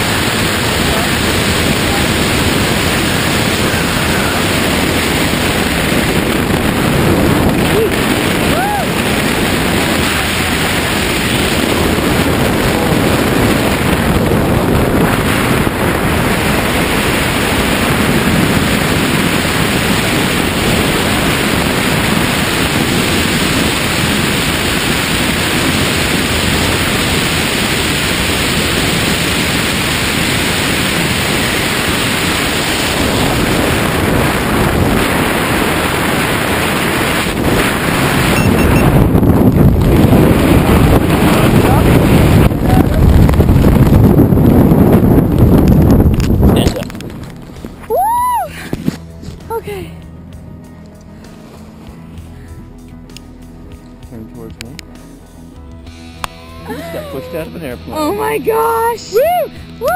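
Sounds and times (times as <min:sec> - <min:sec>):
wind rushing over microphone: 0:00.0 - 0:53.8, 0:55.6 - 0:59.9.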